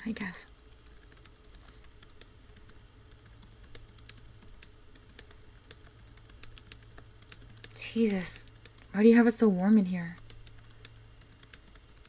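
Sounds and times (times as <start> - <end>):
keyboard typing: 0.0 - 12.0
low steady hum: 0.0 - 12.0.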